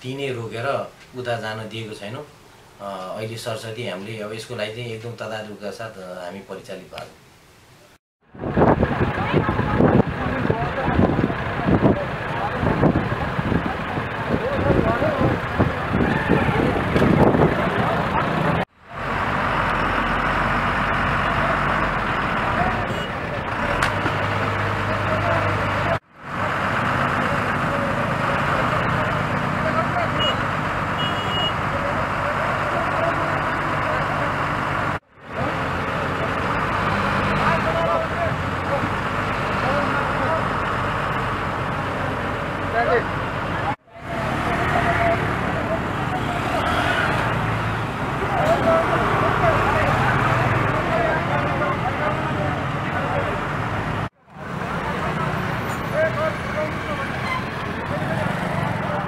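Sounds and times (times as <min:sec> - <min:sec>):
truck engines: 0:08.2 - 0:59.0
murmur of people talking: 0:08.4 - 0:18.6, 0:48.0 - 0:53.5
motorcycle engines: 0:08.4 - 0:59.0.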